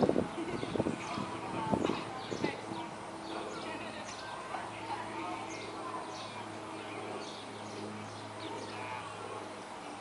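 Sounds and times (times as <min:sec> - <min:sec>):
birds chirping: 0:00.0 - 0:10.0
distant voices: 0:00.0 - 0:10.0.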